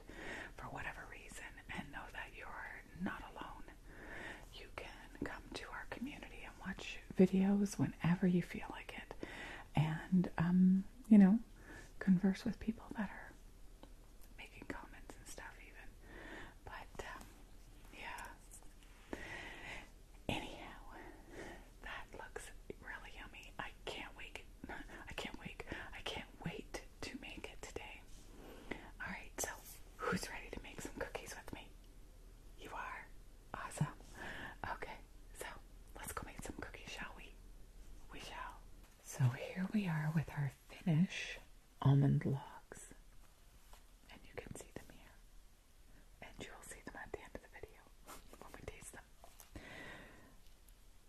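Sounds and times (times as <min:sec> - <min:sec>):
woman whispering: 0:00.4 - 0:03.8, 0:04.5 - 0:13.4, 0:14.3 - 0:16.0, 0:16.6 - 0:18.7, 0:19.7 - 0:31.7, 0:32.6 - 0:37.4, 0:38.1 - 0:43.0, 0:44.1 - 0:45.3, 0:46.2 - 0:49.1
woman speaking softly: 0:04.5 - 0:13.4, 0:29.0 - 0:31.7, 0:38.1 - 0:43.0.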